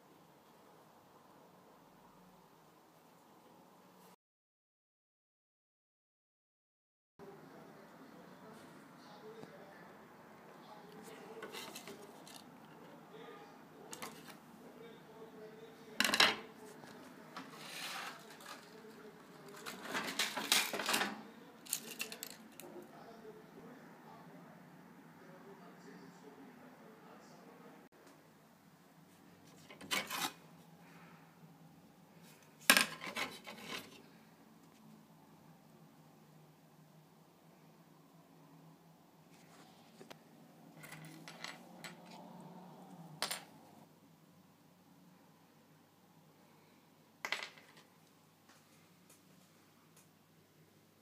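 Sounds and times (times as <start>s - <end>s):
small parts clattering and clicking: 11.4s - 12.5s, 19.5s - 22.7s, 32.6s - 34.0s, 40.8s - 42.2s
metal parts clicking and clinking: 21.7s - 22.4s.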